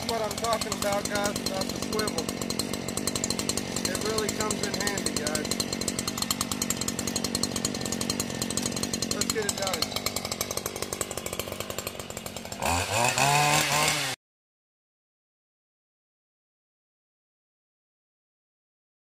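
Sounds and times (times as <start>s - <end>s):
hedge trimmer engine idling: 0.0s - 14.2s
hedge trimmer engine revving: 0.0s - 14.2s.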